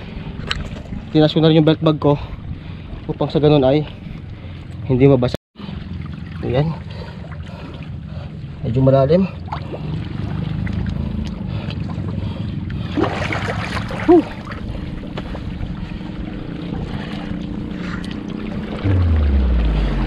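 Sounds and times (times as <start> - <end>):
seawater sloshing around legs: 5.6 - 20.0
steady low hum: 5.6 - 20.0
low rumble falling in pitch: 18.7 - 20.0.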